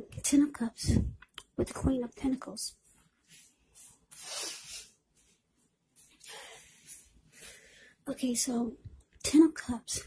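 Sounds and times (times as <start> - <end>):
soft hissing: 3.2 - 5.3.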